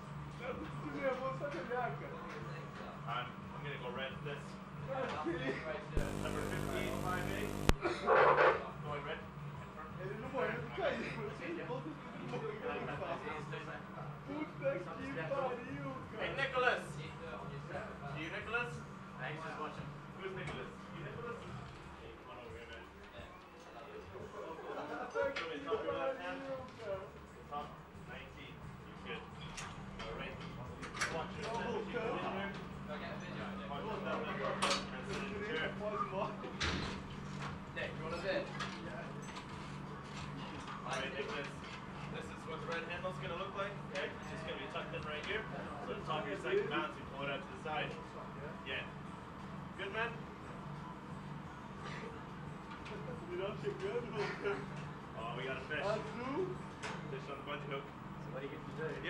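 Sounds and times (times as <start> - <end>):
steady low hum: 6.0 - 7.8
indistinct background talk: 9.8 - 59.0.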